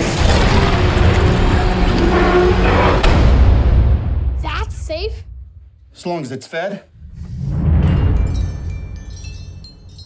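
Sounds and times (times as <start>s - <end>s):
film trailer score rumble: 0.0s - 9.6s.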